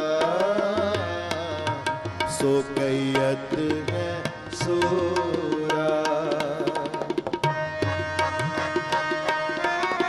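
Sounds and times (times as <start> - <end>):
harmonium held chords: 0.0 - 10.0
tabla strokes: 0.0 - 10.0.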